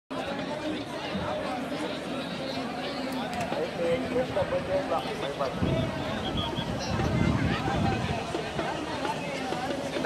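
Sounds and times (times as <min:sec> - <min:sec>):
overlapping voices chattering: 0:00.1 - 0:10.0.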